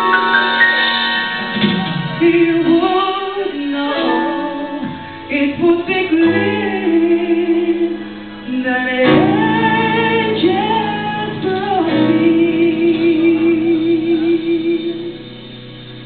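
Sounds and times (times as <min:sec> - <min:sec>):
woman singing slow song: 0:02.1 - 0:15.5.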